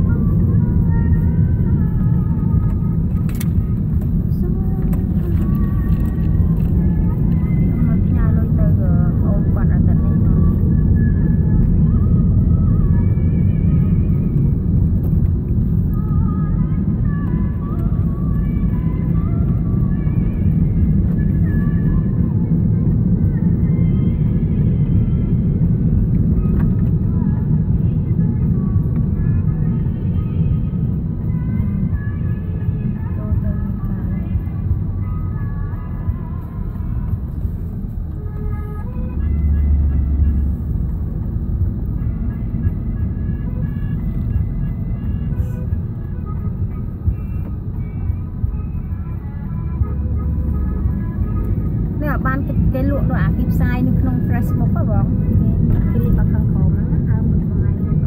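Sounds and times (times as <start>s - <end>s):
car engine and road rumble: 0.0s - 58.0s
muffled music with vocals: 0.0s - 58.0s.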